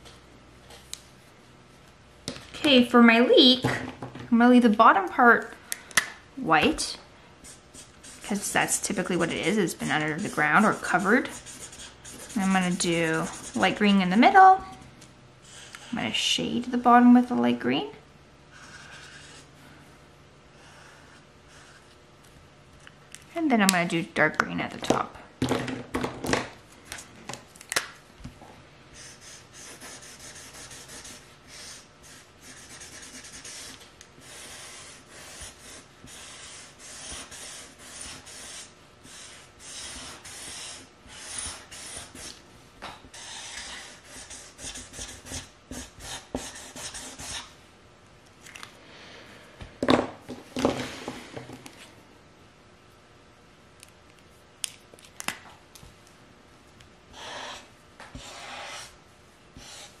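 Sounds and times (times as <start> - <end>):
marker scratching across paper: 7.4 - 13.8, 18.6 - 19.5, 29.0 - 42.4, 43.1 - 47.5, 57.2 - 59.0, 59.6 - 60.0.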